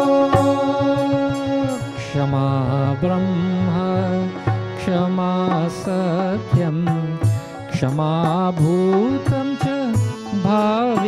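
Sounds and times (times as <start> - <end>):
steady drone: 0.0 - 2.3
person singing devotional melody: 0.0 - 11.0.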